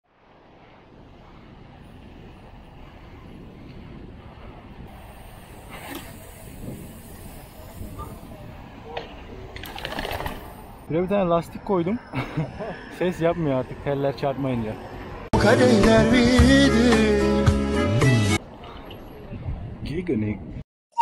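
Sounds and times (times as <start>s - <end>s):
bike tyre noise on paving: 0.0s - 10.9s
low wind rumble: 0.0s - 15.3s, 18.4s - 20.6s.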